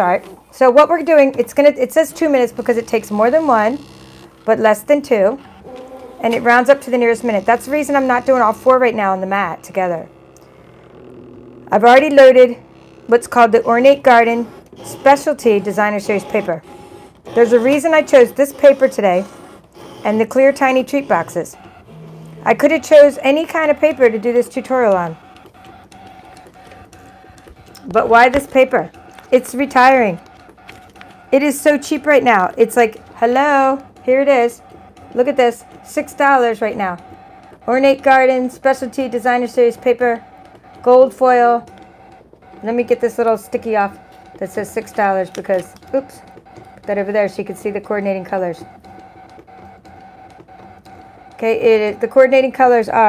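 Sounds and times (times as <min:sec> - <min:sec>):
cutting machine motor whine: 0:00.6 - 0:53.0.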